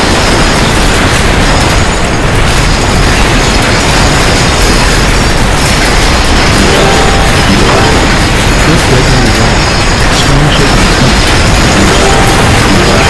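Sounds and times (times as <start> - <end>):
earthquake ground rumble: 0.0 - 13.0.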